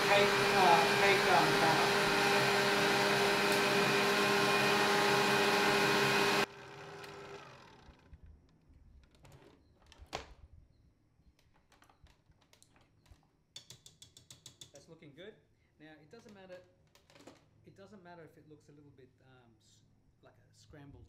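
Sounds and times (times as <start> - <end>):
electric stand mixer whisking: 0.0 - 8.0.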